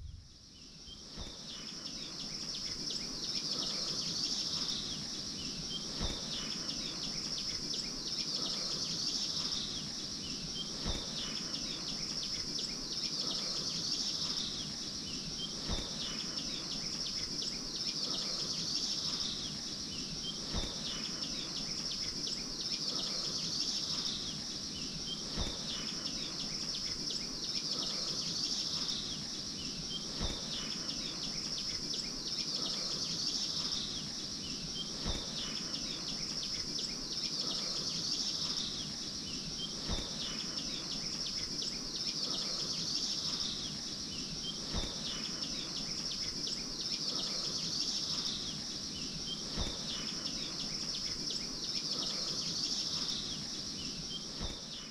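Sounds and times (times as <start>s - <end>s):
faint bird chirps: 0.0s - 54.9s
high insect chorus: 0.0s - 54.9s.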